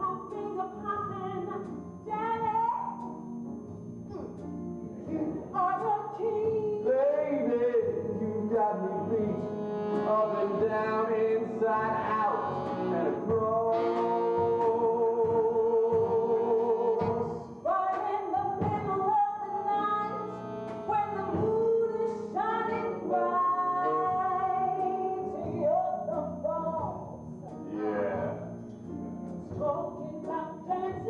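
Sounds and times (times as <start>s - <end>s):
instrumental accompaniment: 0.0s - 31.0s
woman singing with vibrato: 5.5s - 7.4s, 11.8s - 27.0s.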